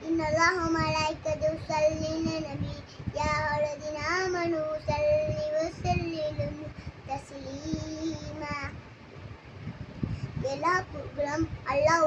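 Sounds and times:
boy chanting recitation: 0:00.0 - 0:08.8, 0:10.4 - 0:12.0.

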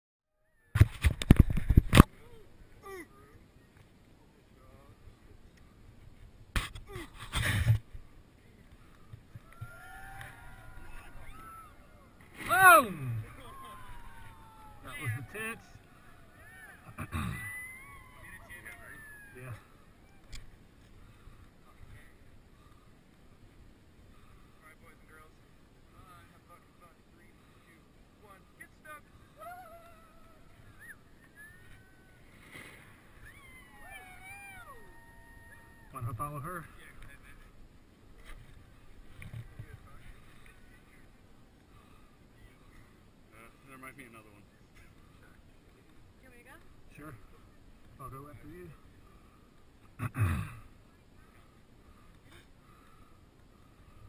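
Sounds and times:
distant shouts: 0:08.9 - 0:21.3, 0:29.1 - 0:36.4
distant human cries: 0:09.3 - 0:20.6, 0:29.2 - 0:36.1.

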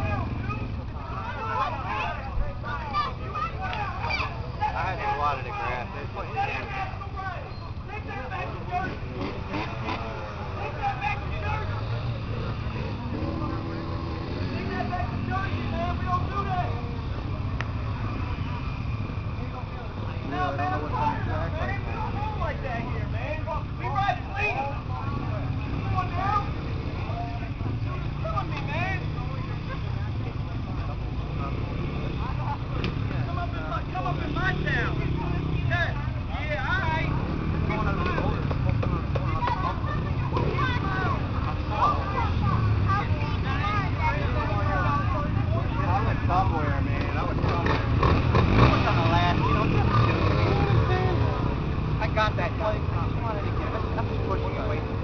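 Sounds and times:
motorcycle engines revving: 0:00.0 - 0:55.0
people talking: 0:00.0 - 0:55.0.

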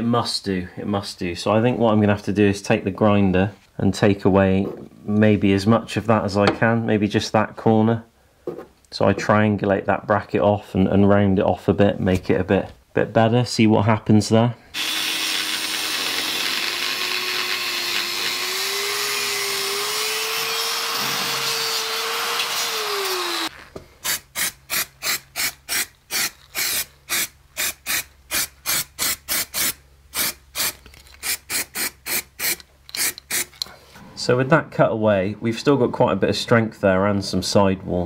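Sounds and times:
angle grinder cutting steel: 0:14.8 - 0:23.5.

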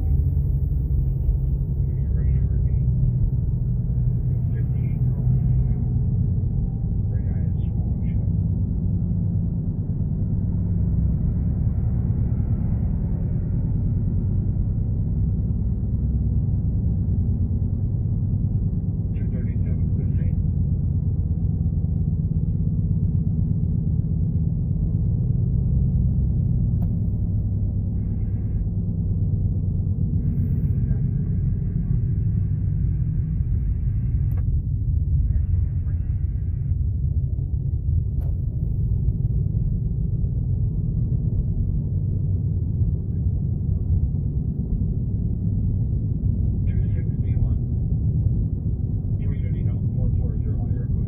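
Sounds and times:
car cabin road rumble: 0:00.0 - 0:51.0.

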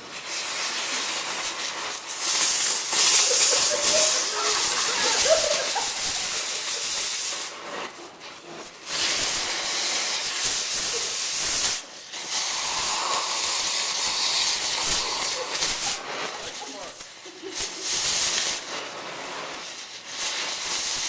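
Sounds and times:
torch hissing: 0:00.0 - 0:21.0.

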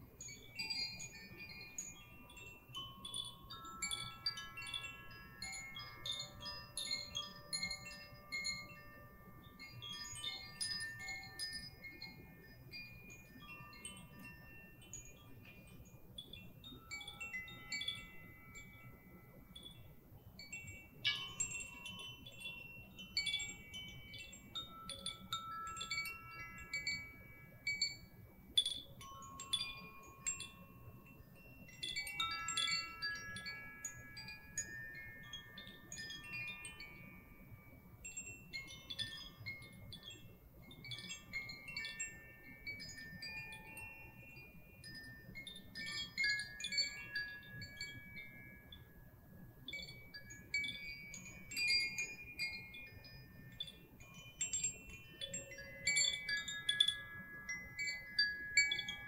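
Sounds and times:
chimes tinkling: 0:00.0 - 0:59.0.

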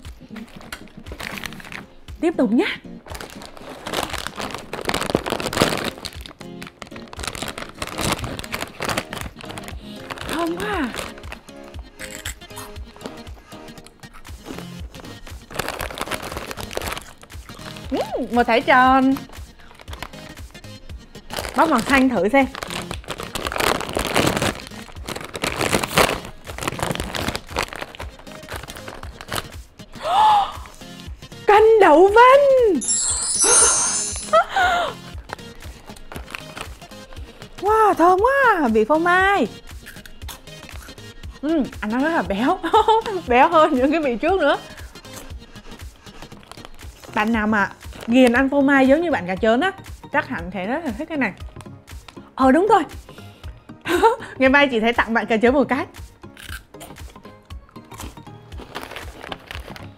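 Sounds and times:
background music: 0:00.0 - 0:59.9
plastic snack bag crinkling: 0:00.2 - 0:02.0, 0:03.0 - 0:13.2, 0:14.4 - 0:18.0, 0:19.0 - 0:20.4, 0:21.2 - 0:29.6, 0:35.3 - 0:37.2, 0:44.6 - 0:47.2, 0:47.8 - 0:48.3, 0:57.8 - 0:59.9.

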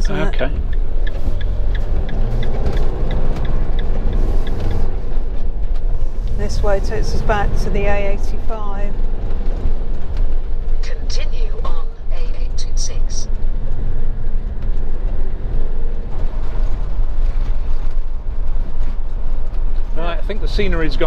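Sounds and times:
engine and road rumble: 0:00.0 - 0:21.0.

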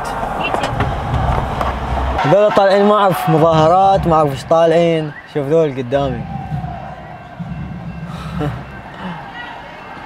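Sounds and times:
low rumble of street noise: 0:00.0 - 0:10.0
faint voices: 0:02.2 - 0:10.0.

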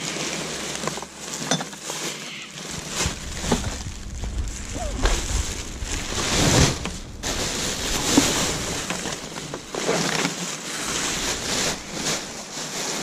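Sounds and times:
plastic bags rustling: 0:00.0 - 0:13.0.

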